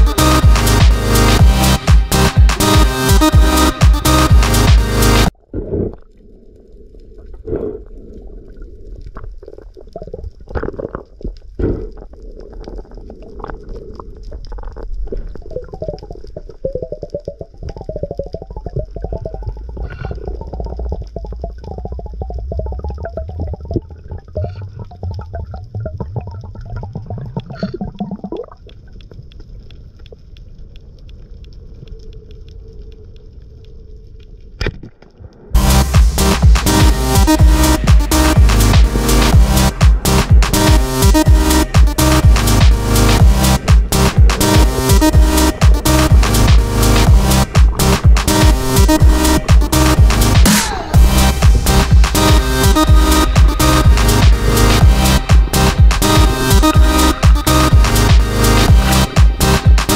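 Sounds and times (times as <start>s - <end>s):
underwater clicks and crackles: 5.4s - 35.6s
underwater rumble of water movement: 5.4s - 36.6s.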